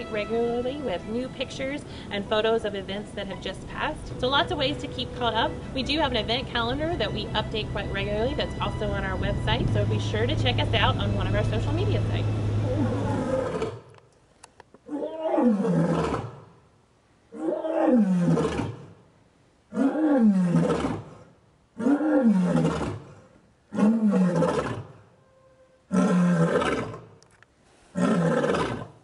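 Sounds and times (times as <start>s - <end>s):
lioness roaring: 12.5s - 13.9s, 14.8s - 16.4s, 17.3s - 18.9s, 19.7s - 25.0s, 25.9s - 27.1s, 27.9s - 28.9s.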